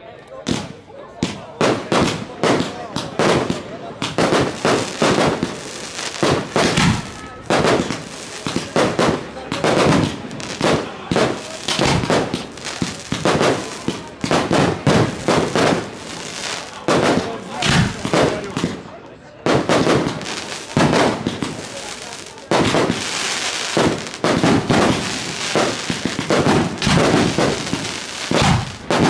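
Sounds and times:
fireworks bangs and crackles: 0.3 - 29.0.

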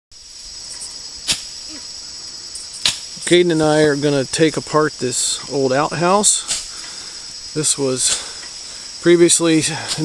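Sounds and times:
insects chirring: 0.1 - 10.0.

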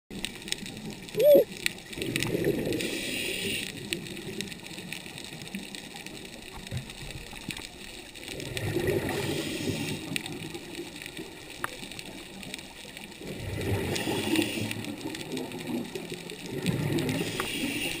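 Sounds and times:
steady underwater background: 0.1 - 18.0
underwater exhaled air bubbles: 0.1 - 18.0.

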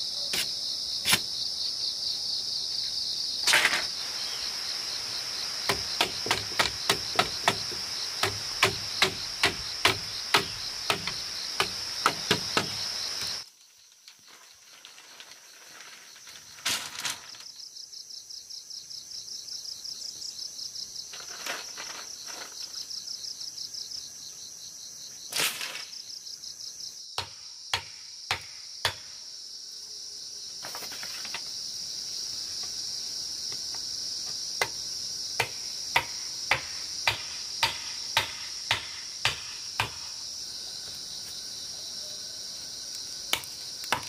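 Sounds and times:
insects chirring: 0.0 - 44.0
tool knocking on bamboo: 5.7 - 12.8.

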